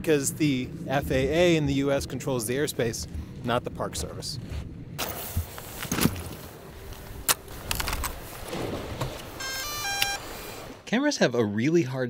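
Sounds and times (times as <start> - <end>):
electronic start-up beeps: 9.4 - 10.3.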